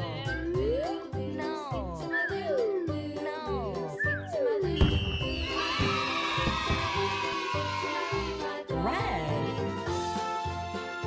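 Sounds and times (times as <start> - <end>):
children's music: 0.0 - 11.0
falling whistle glide: 4.0 - 5.7.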